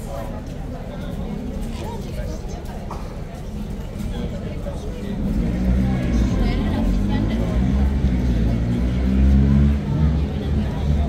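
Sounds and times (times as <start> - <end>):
crowd chatter: 0.0 - 11.0
vehicle engine rumbling: 0.4 - 11.0.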